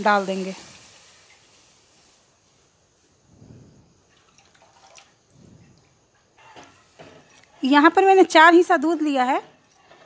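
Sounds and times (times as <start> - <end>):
milk trickling and dripping: 4.0 - 7.5.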